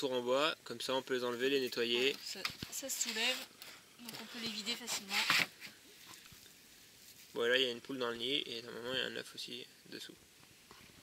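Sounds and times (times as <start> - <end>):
faint rustling of straw: 1.4 - 9.6
plastic crate scraping: 2.1 - 3.5.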